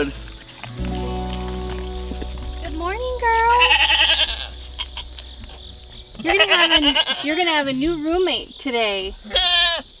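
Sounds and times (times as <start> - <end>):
goat bleating: 3.6 - 4.5, 9.2 - 9.9.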